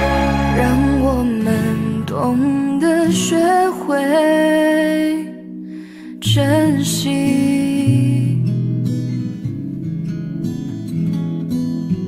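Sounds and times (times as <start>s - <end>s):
pop ballad: 0.0s - 9.8s.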